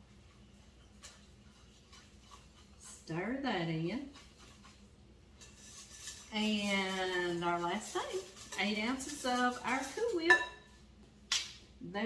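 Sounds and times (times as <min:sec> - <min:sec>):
whisk scraping glass bowl: 0:00.0 - 0:10.7.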